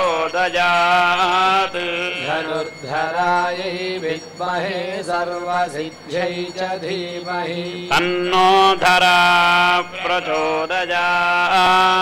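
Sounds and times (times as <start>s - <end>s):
men chanting: 0.0s - 12.0s.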